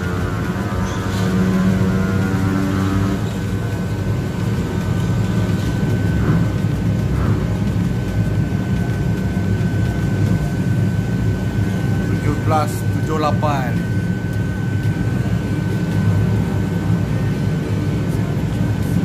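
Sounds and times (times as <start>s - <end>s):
motorcycle engine running hard: 0.0s - 7.8s.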